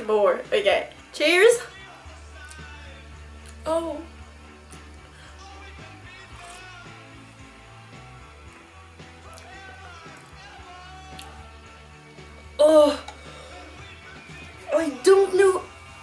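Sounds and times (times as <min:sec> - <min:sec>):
quiet background music: 0:00.0 - 0:16.0.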